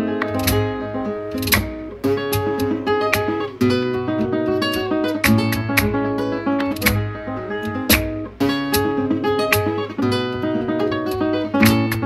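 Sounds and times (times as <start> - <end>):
flamenco guitar picking: 0.0 - 12.0
strummed guitar chords: 0.0 - 12.0.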